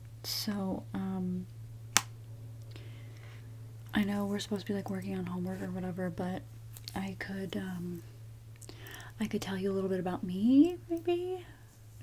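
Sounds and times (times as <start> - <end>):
low steady hum: 0.0 - 12.0
woman saying um: 0.2 - 1.5, 3.9 - 8.1, 9.2 - 11.5.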